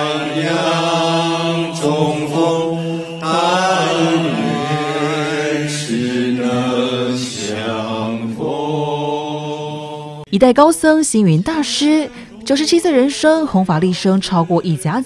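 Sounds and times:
group chanting in unison: 0:00.0 - 0:10.3.

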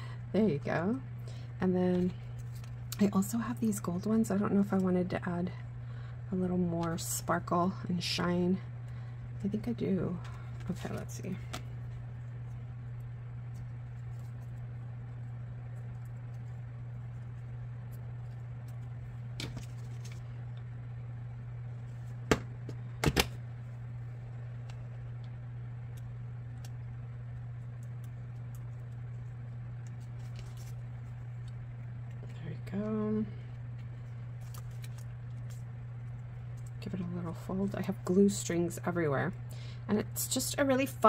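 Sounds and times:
low hum: 0:00.0 - 0:41.0.

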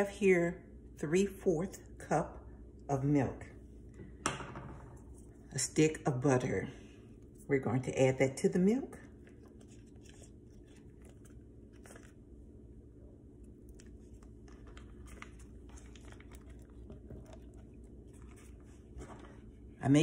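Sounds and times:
low steady hum: 0:00.0 - 0:20.0
wrapper crinkling and tearing: 0:13.8 - 0:17.5.

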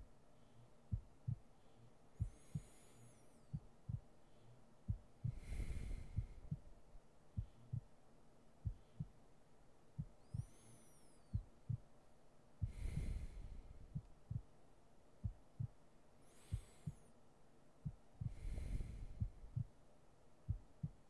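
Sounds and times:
heartbeat thumps: 0:00.9 - 0:01.5, 0:02.2 - 0:02.8, 0:03.5 - 0:04.1, 0:04.9 - 0:06.7, 0:07.4 - 0:07.9, 0:08.6 - 0:09.2, 0:10.0 - 0:10.5, 0:11.3 - 0:11.9, 0:12.6 - 0:14.5, 0:15.2 - 0:15.8, 0:17.8 - 0:19.8, 0:20.4 - 0:21.0
long breath: 0:01.6 - 0:03.5, 0:05.2 - 0:06.6, 0:10.2 - 0:11.4, 0:12.6 - 0:14.0, 0:16.2 - 0:17.1, 0:18.2 - 0:19.6.

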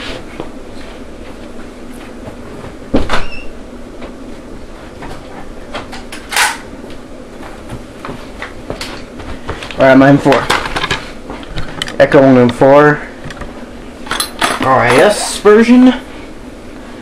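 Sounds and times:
room noise: 0:00.0 - 0:17.0.

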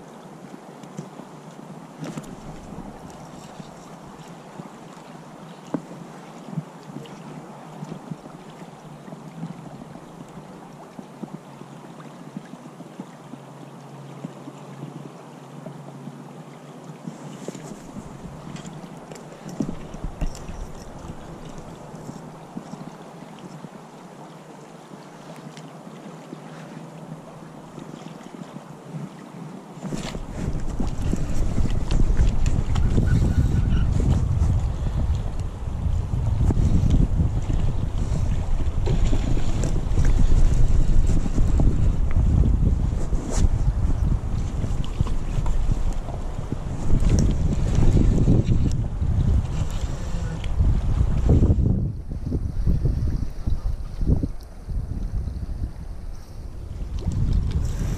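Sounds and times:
wind buffeting microphone: 0:29.8 - 0:57.9
creek running over gravel: 0:34.1 - 0:57.9.

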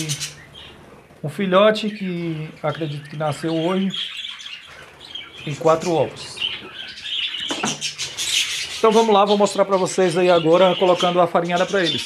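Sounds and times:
budgerigars chattering: 0:00.0 - 0:12.0.

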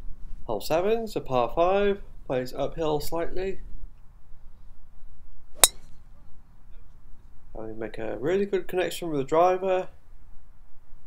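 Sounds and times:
golf driver striking ball: 0:05.6 - 0:05.9.

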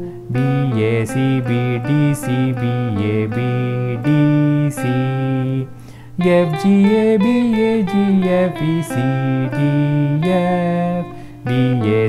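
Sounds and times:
clean electric guitar notes: 0:00.0 - 0:12.0.

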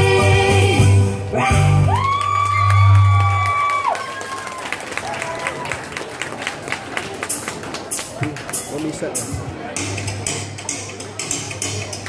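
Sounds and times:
song with backing music: 0:00.0 - 0:02.2, 0:07.9 - 0:12.0
audience clapping and cheering: 0:01.8 - 0:09.2.

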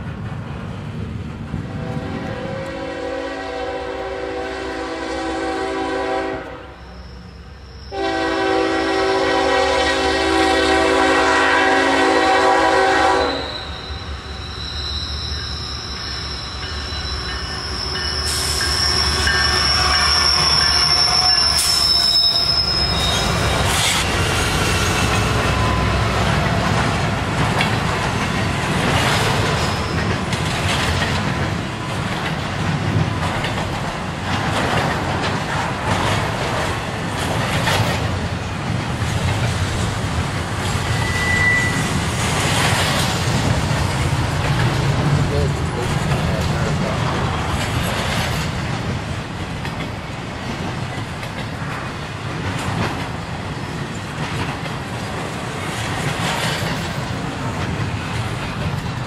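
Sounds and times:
rolling clatter of train cars: 0:00.0 - 0:59.0
train horn blasts: 0:01.7 - 0:07.1, 0:07.9 - 0:14.0, 0:16.6 - 0:22.6
high steady squeal: 0:06.7 - 0:08.0, 0:13.2 - 0:26.1, 0:40.9 - 0:42.2
locomotives rumbling past: 0:07.9 - 0:59.0.

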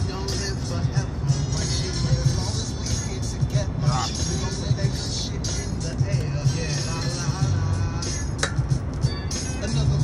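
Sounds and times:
hip-hop beat with heavy bass: 0:00.0 - 0:10.0.

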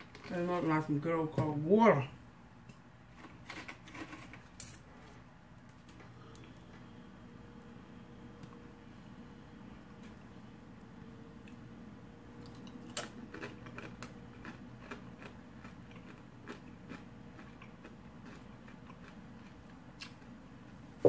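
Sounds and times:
chips crunching: 0:03.1 - 0:04.8, 0:12.4 - 0:20.2.

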